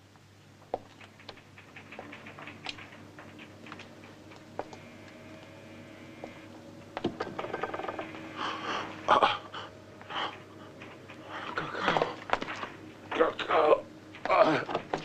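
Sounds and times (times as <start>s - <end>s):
faint steady hum: 0.0s - 15.0s
man breathing heavily: 8.3s - 12.2s.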